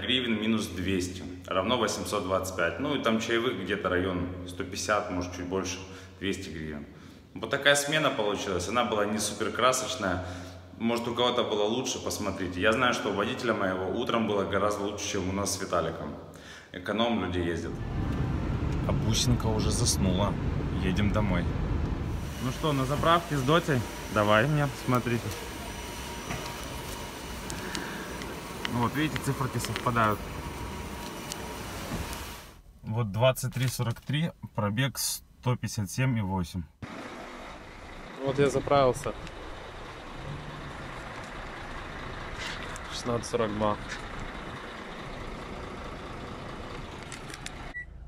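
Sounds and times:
vehicles and machinery rumble: 0:17.6 - 0:32.7, 0:36.8 - 0:48.0.

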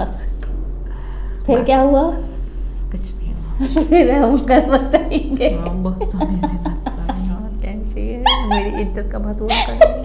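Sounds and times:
women laughing: 0:03.6 - 0:07.4, 0:08.2 - 0:10.0
high-pitched squealing laughter: 0:08.2 - 0:08.9.

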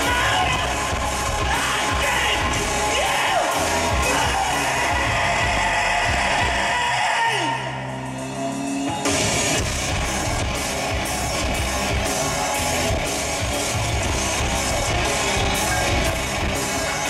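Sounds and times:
industrial band playing loud music: 0:00.0 - 0:17.0.

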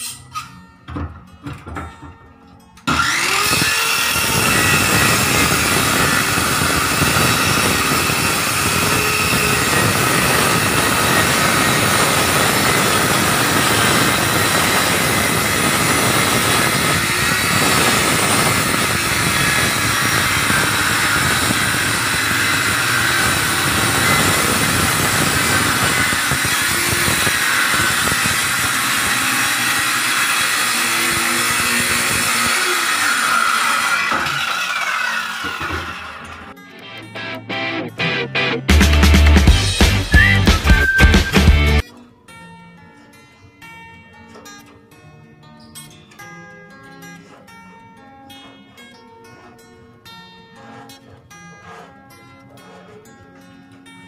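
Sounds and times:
circular saw motor whining: 0:02.8 - 0:36.5, 0:39.4 - 0:41.8.

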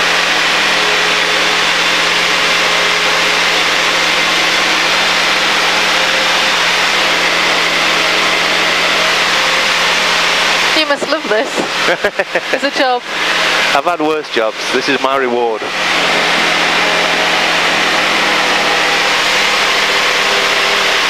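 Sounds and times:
propeller aircraft engine drone: 0:00.0 - 0:21.0.

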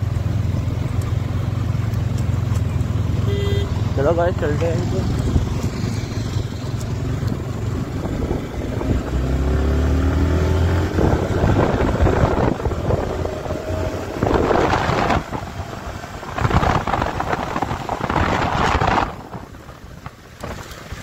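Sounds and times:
motorcycle engine accelerating: 0:00.0 - 0:20.8
wind buffeting microphone: 0:04.9 - 0:21.0.

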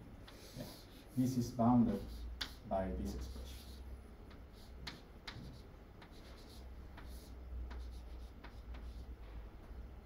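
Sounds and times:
steady low hum: 0:00.0 - 0:10.0
chalk on a blackboard: 0:00.3 - 0:09.2.

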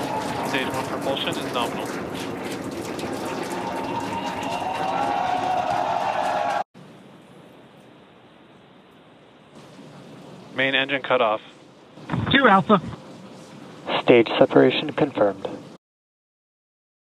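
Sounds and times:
rocket engines crackling rumble: 0:00.0 - 0:15.8
faint steady hiss: 0:06.8 - 0:15.8.

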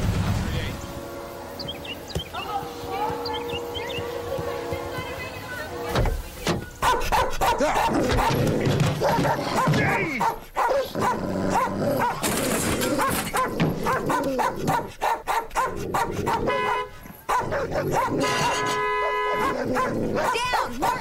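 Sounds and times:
dog barking aggressively: 0:06.8 - 0:21.0.

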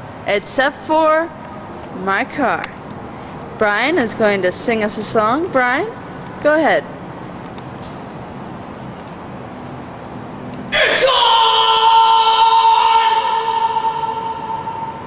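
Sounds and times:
man singing a long high note: 0:10.8 - 0:15.0.

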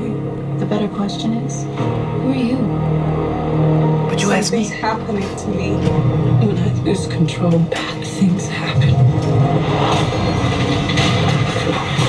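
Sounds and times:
sharp crash: 0:09.6 - 0:12.0.

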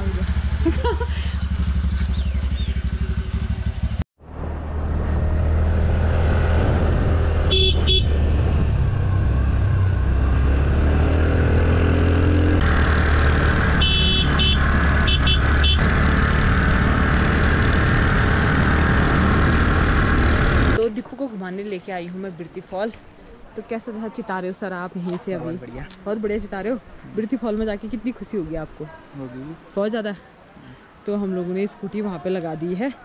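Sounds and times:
motor scooter engine drone: 0:00.0 - 0:20.8
road and wind noise: 0:00.0 - 0:33.0
horn beeping: 0:07.5 - 0:08.2, 0:13.8 - 0:15.8.

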